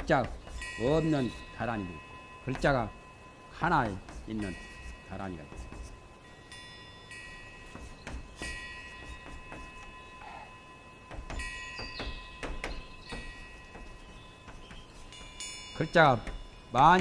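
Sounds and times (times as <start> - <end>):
chalk scraping on blackboard: 0.0 - 1.5, 3.8 - 6.0, 7.6 - 10.5
high bell-like ringing: 0.5 - 14.4, 15.0 - 16.9.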